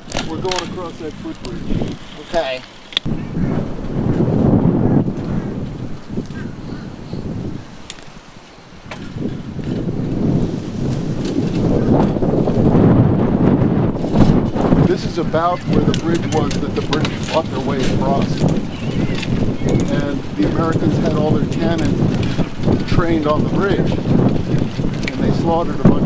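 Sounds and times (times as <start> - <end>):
wind buffeting microphone: 0.0 - 26.0.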